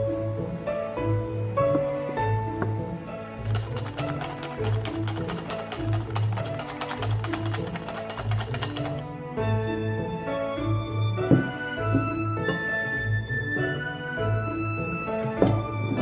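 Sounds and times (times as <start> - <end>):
light music with pulsing bass: 0.0 - 16.0
whisk clicking against bowl: 3.4 - 9.0.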